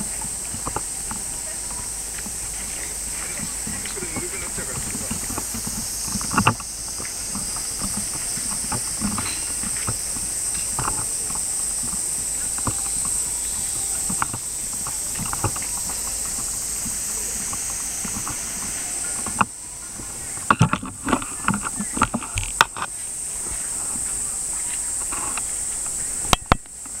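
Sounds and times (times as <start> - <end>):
steady high-pitched hiss: 0.0 - 27.0.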